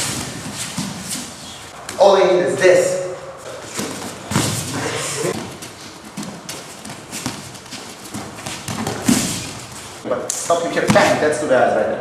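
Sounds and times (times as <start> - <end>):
knocks and thuds on mats: 8.1 - 9.6, 10.8 - 11.2.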